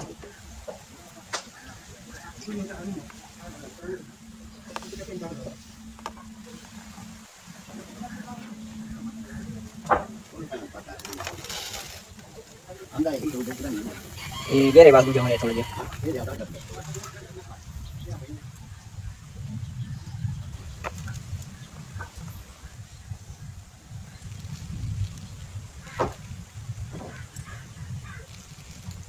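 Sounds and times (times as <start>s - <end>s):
low steady rumble: 0.0s - 29.0s.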